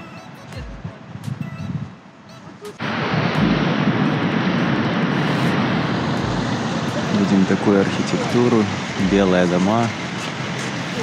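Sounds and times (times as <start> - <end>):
loud street traffic: 0.0 - 11.0.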